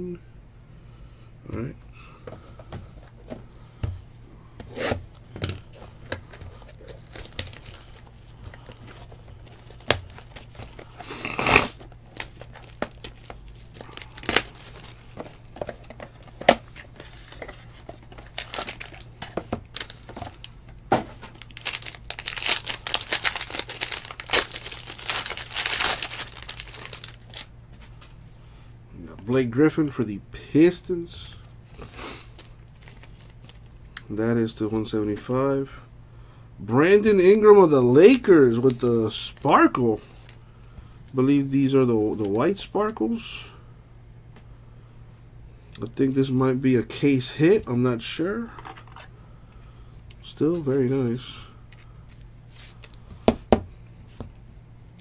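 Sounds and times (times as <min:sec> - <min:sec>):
plastic wrapper tearing and crinkling: 0:05.4 - 0:15.8, 0:16.4 - 0:27.5, 0:32.3 - 0:34.0.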